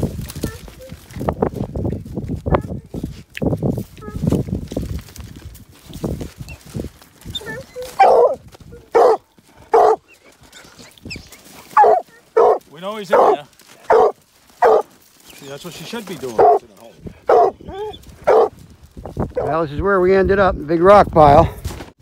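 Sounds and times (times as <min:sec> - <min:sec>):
scuffling: 0:00.0 - 0:19.5
dog bawling: 0:07.3 - 0:14.9, 0:16.3 - 0:18.5
hound barking: 0:07.4 - 0:10.8, 0:11.7 - 0:15.0, 0:16.3 - 0:18.6.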